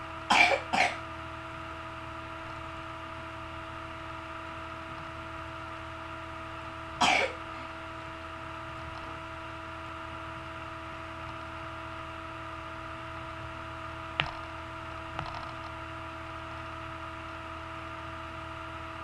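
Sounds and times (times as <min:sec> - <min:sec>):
steady background hum: 0:00.0 - 0:19.0
person coughing: 0:00.3 - 0:01.0, 0:07.0 - 0:07.4.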